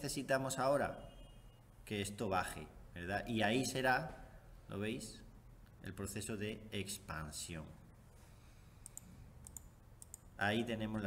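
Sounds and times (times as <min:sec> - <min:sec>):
computer mouse clicks: 0:08.8 - 0:10.3.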